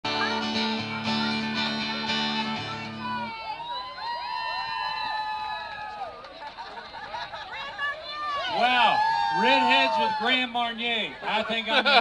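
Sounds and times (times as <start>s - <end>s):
acoustic guitar strumming chords: 0.1s - 3.3s.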